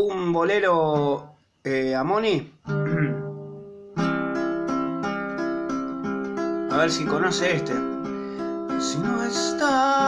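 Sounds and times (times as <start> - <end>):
acoustic guitar chords plucked: 2.6 - 10.0.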